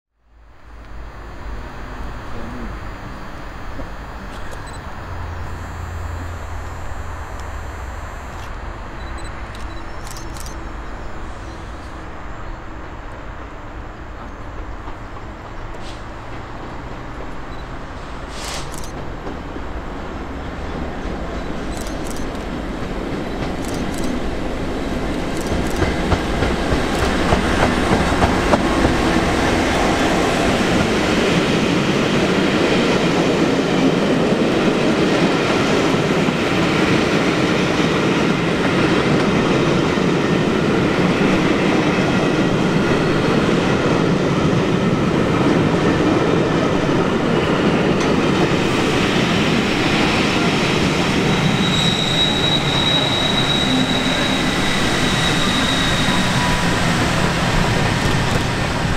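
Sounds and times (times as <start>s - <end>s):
high steady whine: 0.2s - 11.8s
diesel locomotive passing: 0.2s - 58.9s
train wheels rumbling on rails: 8.4s - 58.9s.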